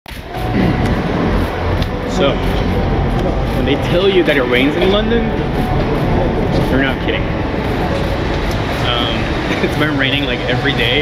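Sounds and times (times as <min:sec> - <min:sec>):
traffic rumble on wet road: 0:06.5 - 0:11.0.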